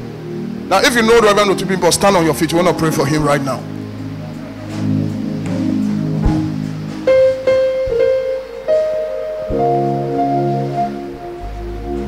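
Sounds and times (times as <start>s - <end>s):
soft keyboard chords: 0.0s - 12.0s.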